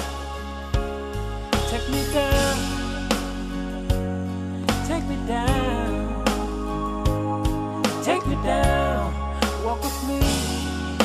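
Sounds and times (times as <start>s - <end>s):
sustained bass: 0.0s - 11.0s
person singing: 1.5s - 11.0s.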